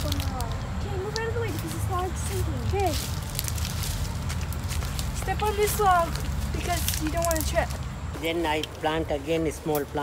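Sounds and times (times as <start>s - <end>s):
footsteps in flip-flops on leaves: 0.0s - 10.0s
twigs crackling and snapping: 0.0s - 10.0s.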